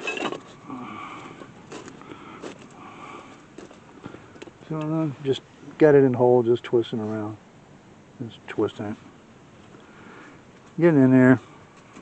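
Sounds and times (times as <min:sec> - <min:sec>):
metal scraping: 0:00.0 - 0:00.6.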